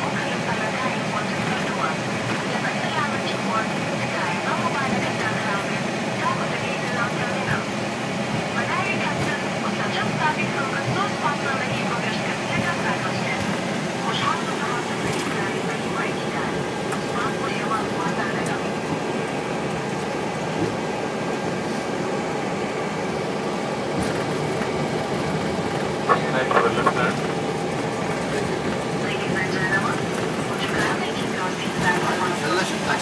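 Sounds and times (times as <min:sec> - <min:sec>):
airliner engines humming: 0:00.0 - 0:33.0
faint voices: 0:08.4 - 0:20.8, 0:24.1 - 0:33.0.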